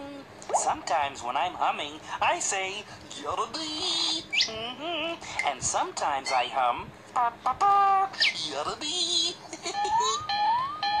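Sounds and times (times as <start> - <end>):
high-pitched cartoon voice: 3.6 - 6.6, 7.2 - 11.0.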